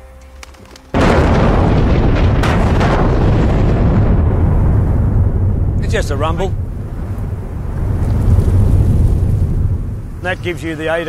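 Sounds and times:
sharp cracks: 0:00.2 - 0:10.4
rumble of breaking rock: 0:00.9 - 0:10.3
mine blast explosion: 0:01.0 - 0:10.6.

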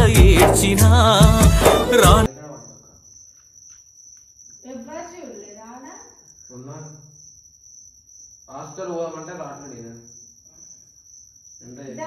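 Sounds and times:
person speaking: 0:00.0 - 0:02.3.

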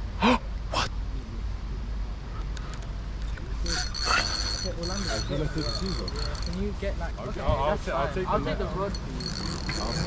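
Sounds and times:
fishing reel drag ratcheting: 0:03.6 - 0:06.7, 0:08.8 - 0:10.0.

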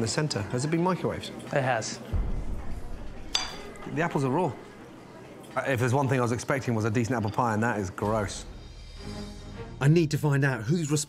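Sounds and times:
metal spoon clinking on plate: 0:03.3 - 0:03.8.

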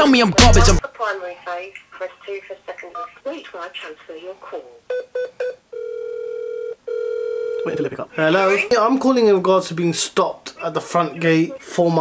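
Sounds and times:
telephone beeps: 0:04.9 - 0:07.7
long steady telephone tones: 0:04.9 - 0:07.9.

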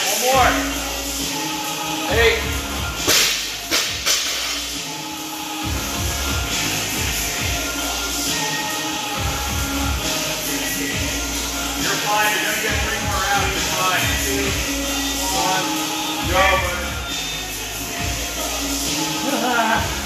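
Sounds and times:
music playing: 0:00.0 - 0:20.0.

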